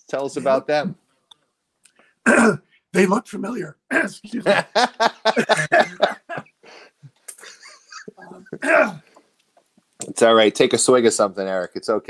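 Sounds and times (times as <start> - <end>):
man coughing: 2.3 - 2.6, 5.4 - 6.5, 8.0 - 9.1.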